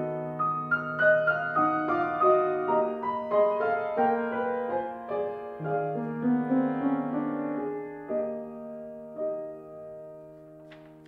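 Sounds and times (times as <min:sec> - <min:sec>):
solo grand piano: 0:00.0 - 0:11.0.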